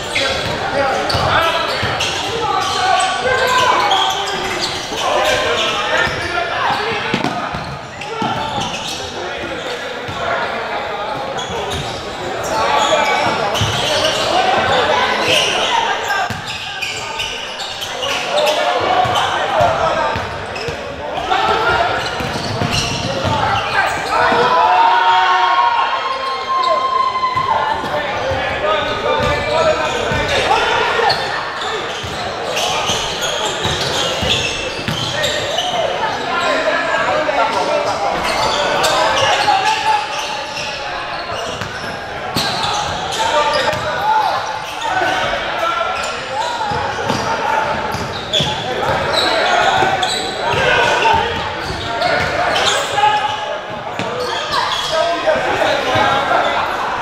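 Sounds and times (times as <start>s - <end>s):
people talking and calling: 0.0s - 57.0s.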